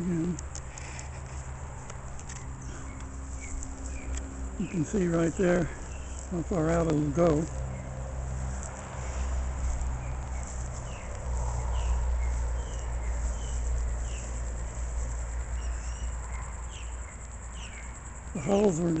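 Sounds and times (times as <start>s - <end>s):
insects chirping: 0.0s - 19.0s
bird chirps: 2.3s - 6.6s, 10.0s - 14.4s, 15.5s - 18.6s.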